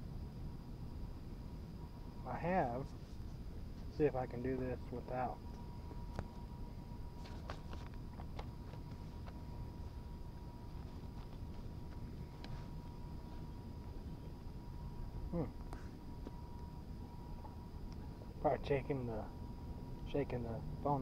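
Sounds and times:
low outdoor rumble: 0:00.0 - 0:21.0
man humming hmm: 0:15.2 - 0:15.6.

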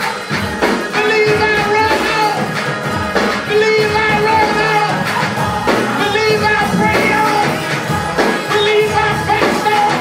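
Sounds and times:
drum kit playing: 0:00.0 - 0:10.0
voices singing: 0:00.0 - 0:10.0
held instrumental notes: 0:03.6 - 0:08.5.

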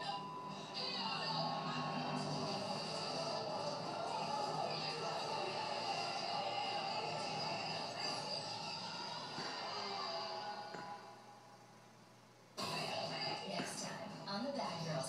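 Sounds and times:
tv programme music from speaker: 0:00.0 - 0:15.0.

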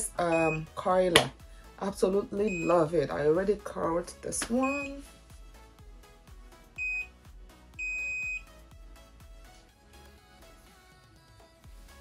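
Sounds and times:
soft background music: 0:00.0 - 0:12.0
hair curler beeping: 0:02.4 - 0:02.9, 0:07.8 - 0:08.4.

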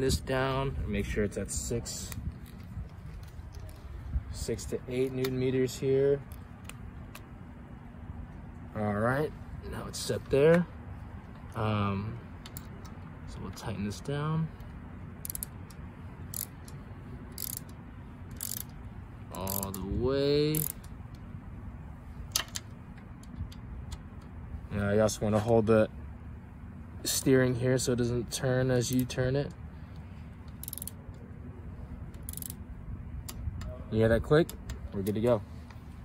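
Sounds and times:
torque wrench ratchet clicks: 0:15.2 - 0:21.2, 0:30.5 - 0:31.0, 0:32.1 - 0:32.6.

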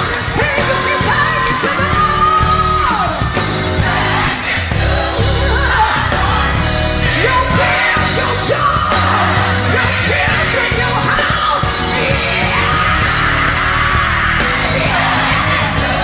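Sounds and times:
full band playing: 0:00.0 - 0:16.0
person singing gospel: 0:00.0 - 0:16.0.

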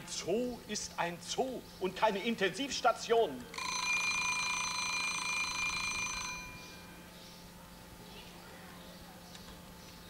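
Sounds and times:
alarm clock bell ringing: 0:03.6 - 0:07.0.

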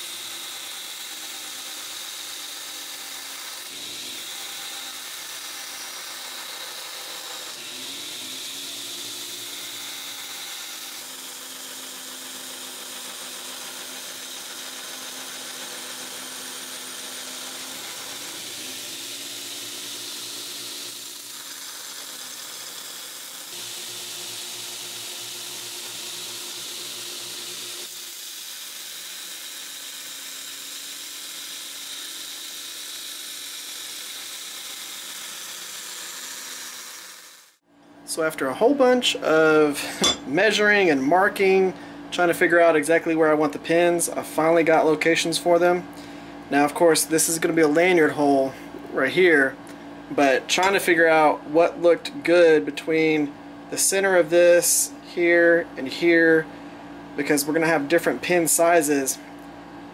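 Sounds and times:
belt grinder grinding steel: 0:00.0 - 0:37.6, 0:50.1 - 0:51.3
grinder motor hum: 0:00.0 - 0:59.9.

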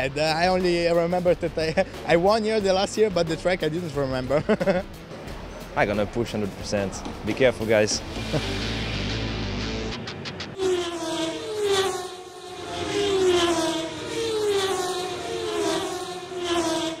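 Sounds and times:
background music: 0:00.0 - 0:10.6
racing cars passing at speed: 0:10.6 - 0:17.0.

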